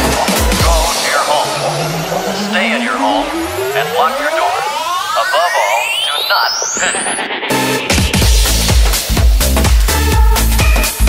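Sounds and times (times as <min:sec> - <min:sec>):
synth riser climbing in pitch: 0:00.0 - 0:08.2
chopped vocal samples: 0:00.1 - 0:07.8.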